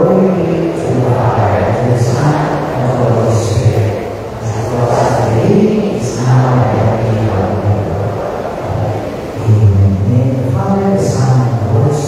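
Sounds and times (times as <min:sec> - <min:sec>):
group of voices singing: 0:00.0 - 0:09.6.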